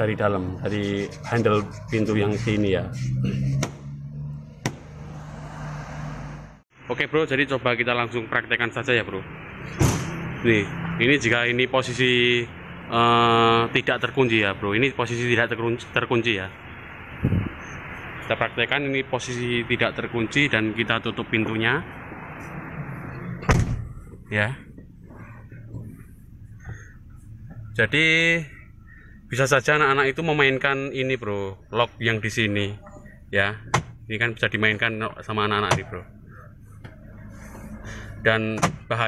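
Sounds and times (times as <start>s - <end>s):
car door slamming: 4.6s - 5.0s, 9.7s - 10.2s, 23.4s - 24.0s, 33.7s - 34.0s, 38.5s - 38.9s.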